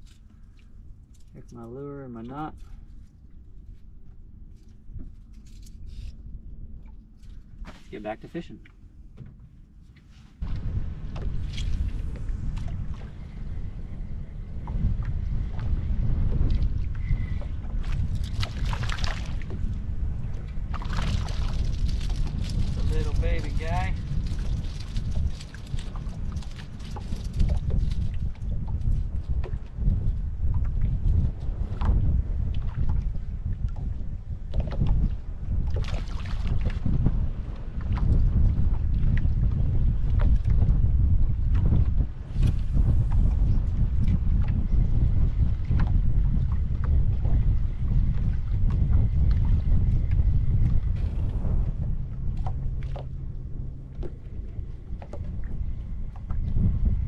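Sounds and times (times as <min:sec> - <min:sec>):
water lapping against hull: 0:00.0 - 0:57.0
wind buffeting microphone: 0:00.0 - 0:57.0.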